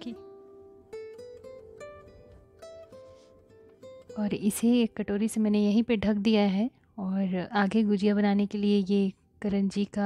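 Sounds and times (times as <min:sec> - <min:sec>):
plucked string melody: 0:00.0 - 0:05.7.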